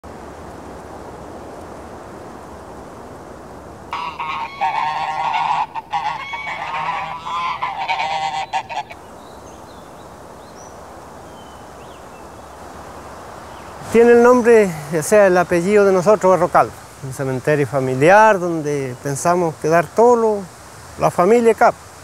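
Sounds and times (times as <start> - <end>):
geese honking: 3.9 - 9.0.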